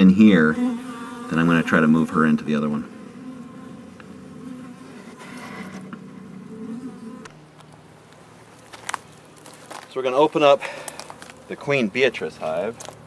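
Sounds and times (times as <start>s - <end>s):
honey bees buzzing: 0.0s - 13.0s.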